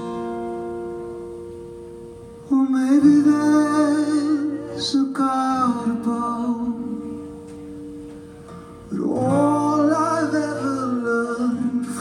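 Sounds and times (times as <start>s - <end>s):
acoustic guitar chord ringing: 0.0s - 12.0s
person singing: 8.9s - 12.0s.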